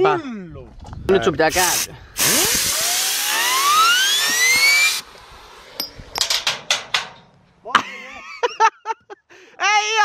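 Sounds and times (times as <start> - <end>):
compressed air hissing: 1.4 - 5.8
spinner whine rising in pitch: 2.3 - 5.8.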